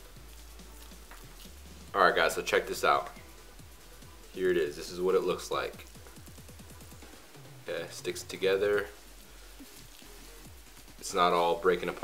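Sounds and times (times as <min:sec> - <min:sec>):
faint music with low bass: 0:00.0 - 0:12.0.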